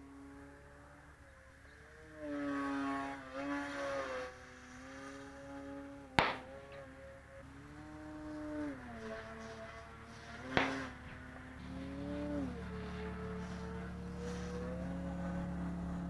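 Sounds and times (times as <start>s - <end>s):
model plane motor whining: 0.0s - 16.0s.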